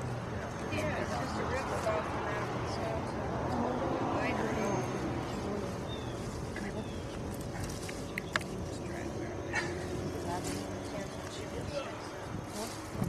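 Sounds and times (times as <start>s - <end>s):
faint background voices: 0.0s - 13.0s.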